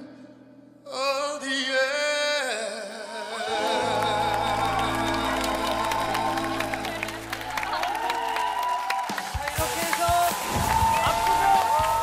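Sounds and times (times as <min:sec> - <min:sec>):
audience clapping: 0:03.5 - 0:12.0.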